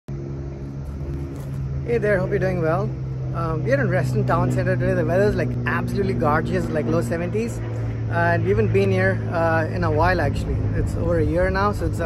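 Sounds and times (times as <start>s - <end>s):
low machine hum: 0.1s - 12.0s.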